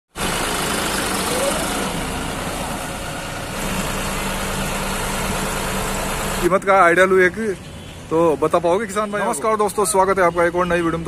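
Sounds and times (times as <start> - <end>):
tractor diesel engine running: 0.1 - 8.5.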